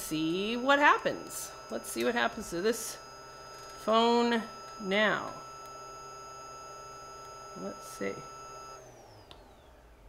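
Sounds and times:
electronic whine: 0.0 - 10.0.

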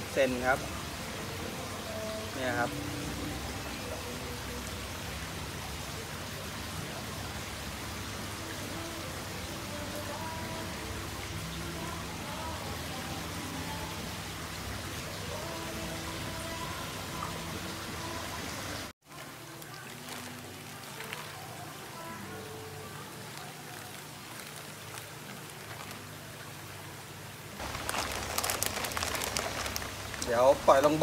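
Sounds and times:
water hissing in a tub: 0.0 - 31.0.

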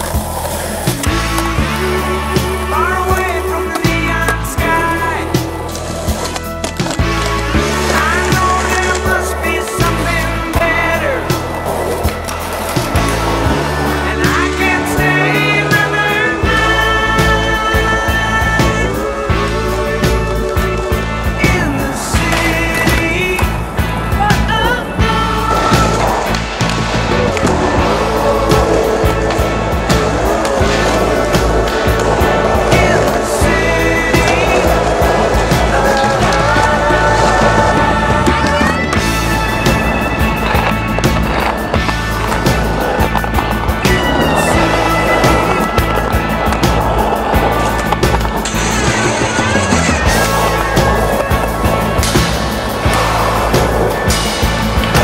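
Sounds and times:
rock music with guitar: 0.0 - 55.0
skateboard wheels rolling: 0.0 - 55.0
skateboard clacks and landings: 22.1 - 55.0.

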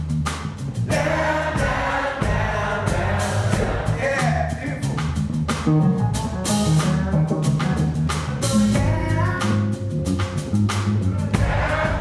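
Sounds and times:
blues-rock band playing: 0.0 - 12.0
drum hits: 0.3 - 9.6, 10.2 - 12.0.

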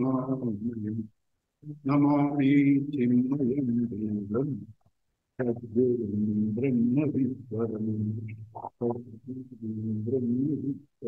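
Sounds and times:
man chanting: 0.0 - 4.8, 5.4 - 11.0.

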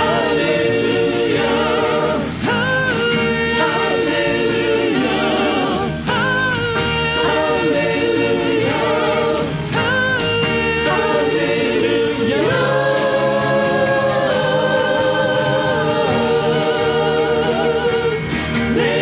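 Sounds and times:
band accompaniment: 0.0 - 19.0
vocal group singing: 0.0 - 19.0.

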